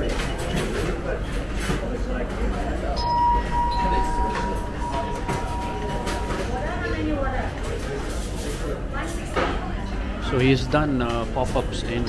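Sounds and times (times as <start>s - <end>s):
fainter lower tone: 3.0s - 6.8s
steady high-pitched tone: 3.0s - 7.1s.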